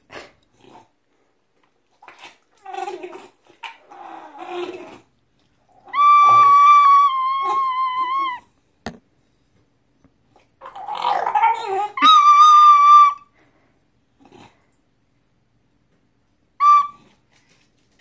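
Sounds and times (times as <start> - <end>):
dog whimpering and howling: 5.8 - 8.5, 11.2 - 13.3.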